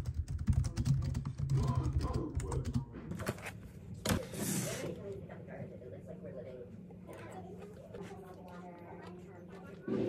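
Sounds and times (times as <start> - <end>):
computer keyboard typing: 0.0 - 2.8.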